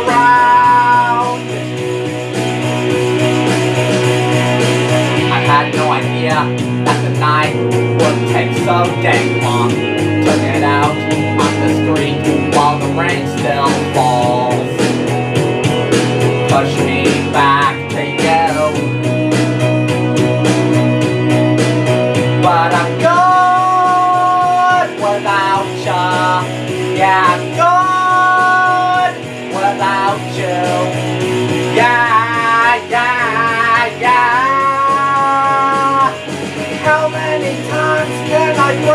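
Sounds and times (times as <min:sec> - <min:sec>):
man singing karaoke: 0:00.0 - 0:01.7, 0:05.2 - 0:15.1, 0:16.5 - 0:18.9, 0:22.3 - 0:38.9
rock backing track with guitar: 0:00.0 - 0:38.9.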